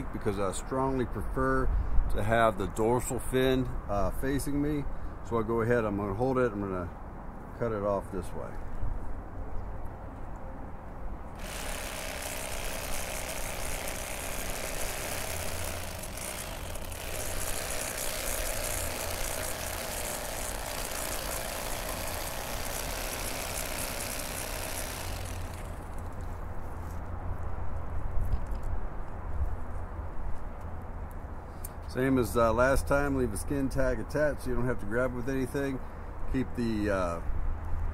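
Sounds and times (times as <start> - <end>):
electric fillet knife cutting fish: 11.4 - 25.9.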